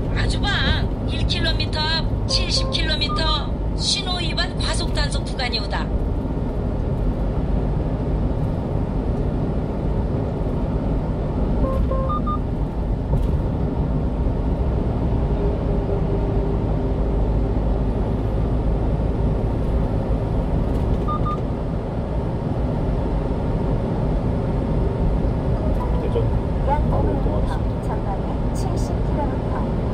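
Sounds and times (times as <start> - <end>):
truck driving rumble: 0.0 - 29.9
faint short beeps: 11.6 - 12.4.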